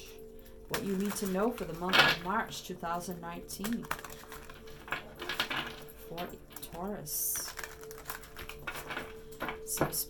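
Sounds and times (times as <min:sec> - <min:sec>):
cards being shuffled: 0:03.6 - 0:06.0, 0:07.4 - 0:09.6.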